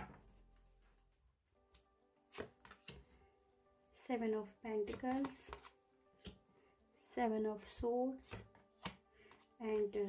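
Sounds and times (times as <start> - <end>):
quiet background music: 0.0 - 10.0
cards tapping and sliding on table: 1.7 - 3.1, 4.9 - 6.4, 8.3 - 9.5.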